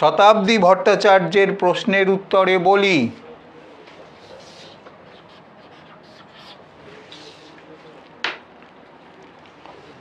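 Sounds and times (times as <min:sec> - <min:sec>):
marker scratching on whiteboard: 0:04.0 - 0:07.7.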